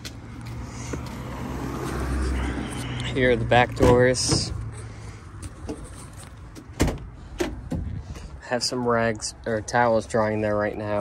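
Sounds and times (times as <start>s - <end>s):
car driving past: 0.2s - 3.5s.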